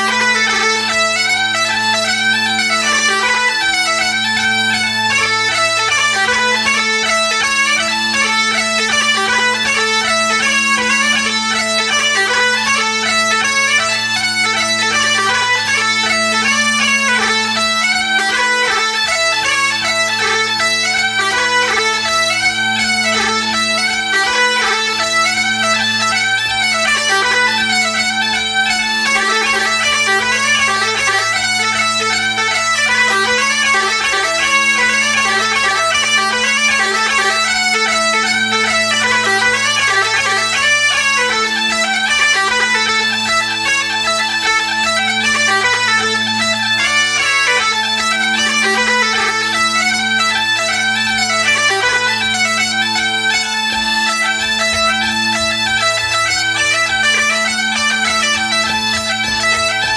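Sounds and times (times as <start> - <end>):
bagpipe playing lively tune: 0.0 - 59.9.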